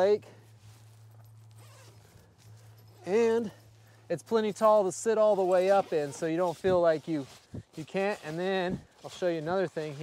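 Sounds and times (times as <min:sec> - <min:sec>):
faint fabric rustling: 0:00.0 - 0:10.0.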